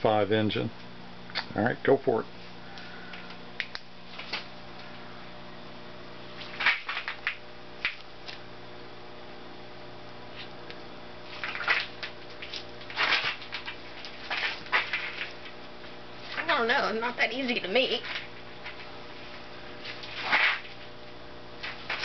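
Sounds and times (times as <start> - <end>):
low electrical hum: 0.0 - 22.0.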